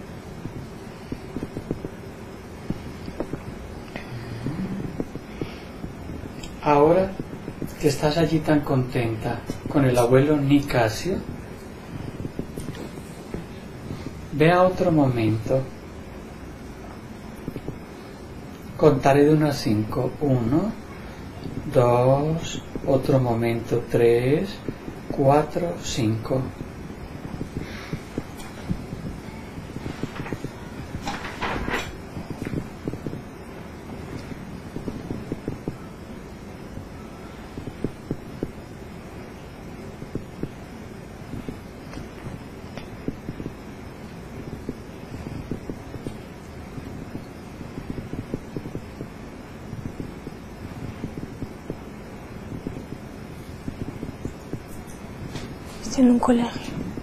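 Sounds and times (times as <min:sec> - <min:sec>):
low background noise: 0:00.0 - 0:57.0
microphone rustling on clothing: 0:26.5 - 0:35.8.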